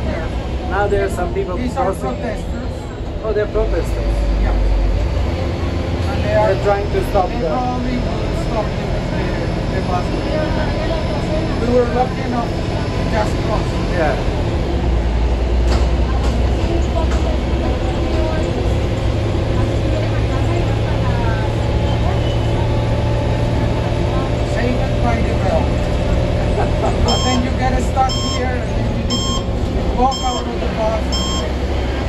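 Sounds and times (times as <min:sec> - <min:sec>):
bus engine and road rumble: 0:00.0 - 0:32.0
electronic warning beep: 0:27.1 - 0:31.5.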